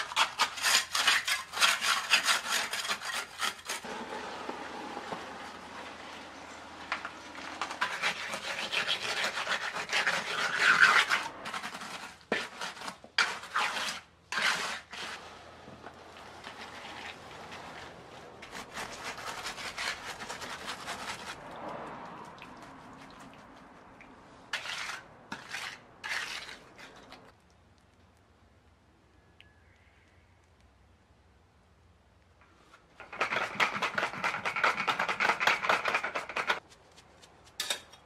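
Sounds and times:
trowel scraping wet cement: 0.0 - 21.4, 22.2 - 27.4, 33.0 - 36.7.

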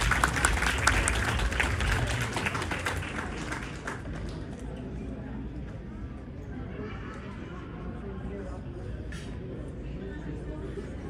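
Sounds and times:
crowd applause: 0.0 - 4.7.

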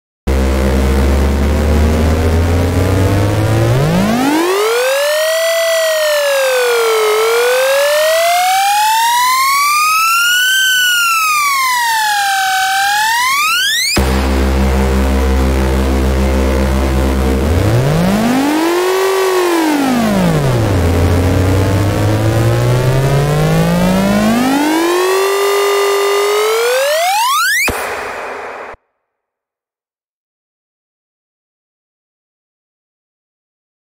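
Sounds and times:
synth riser sound effect: 0.3 - 9.6, 10.2 - 28.8.

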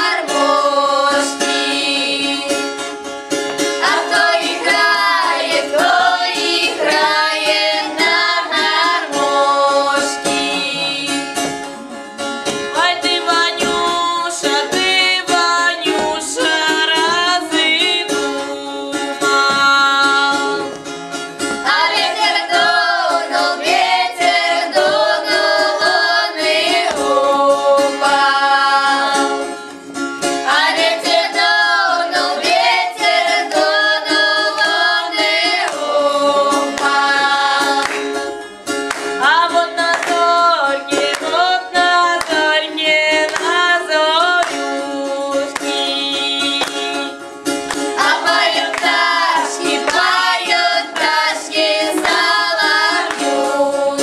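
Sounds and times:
girls singing together: 0.0 - 2.8, 3.7 - 11.7, 12.7 - 20.8, 21.6 - 29.6, 30.4 - 38.4, 39.2 - 47.1, 47.8 - 54.0
strummed balalaika: 0.0 - 54.0.

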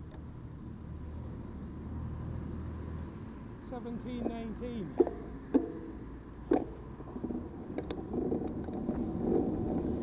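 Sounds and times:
car passing by: 0.9 - 3.8.

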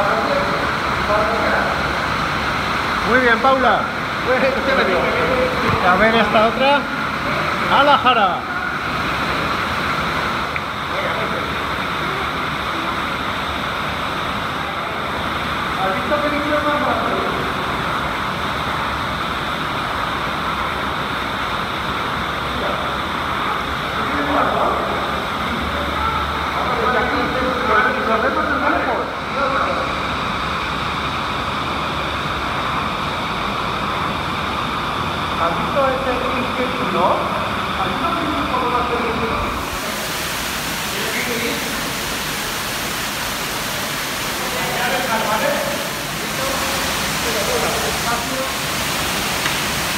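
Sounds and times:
muffled underwater water rush: 0.0 - 49.9.

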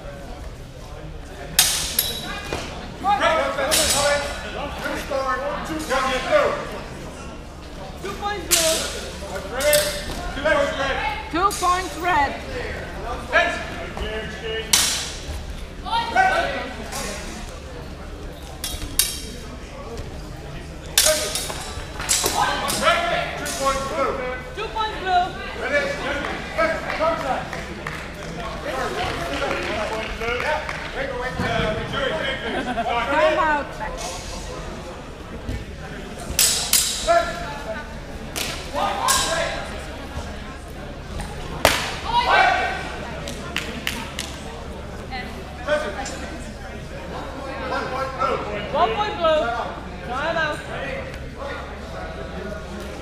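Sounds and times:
low indistinct voices: 0.0 - 53.0
swords clashing: 1.6 - 2.3, 3.7 - 4.0, 14.7 - 15.2, 21.0 - 22.8, 36.4 - 37.2
shouting voices echoing: 41.9 - 43.0.

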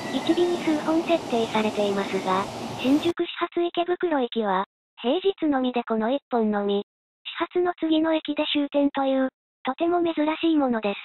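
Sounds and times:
station platform background noise: 0.0 - 3.2
synthesized narration voice: 0.1 - 3.2.

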